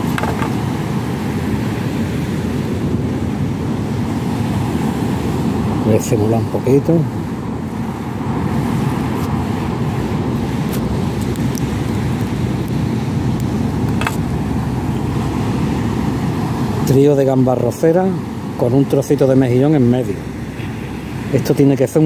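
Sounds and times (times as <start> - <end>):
wind noise on microphone: 0.0 - 22.0.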